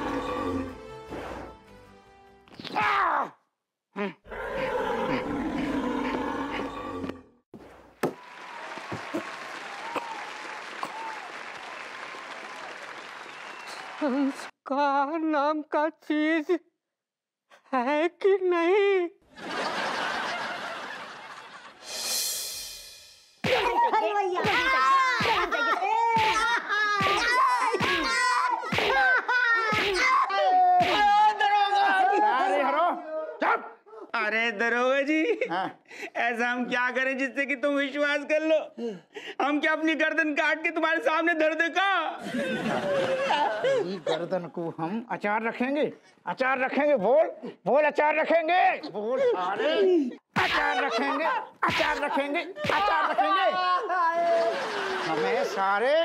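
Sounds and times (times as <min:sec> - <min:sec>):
audience applause: 0:08.1 - 0:14.5
man crying and yelping: 0:23.4 - 0:34.2, 0:47.0 - 0:54.7.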